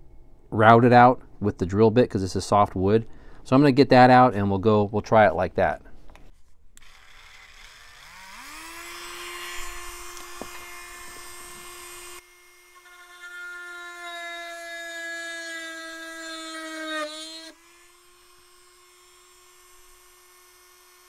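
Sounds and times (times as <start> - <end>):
drill bit boring into wood: 6.8 - 21.0
rotary tool high-pitched whine: 6.8 - 21.0.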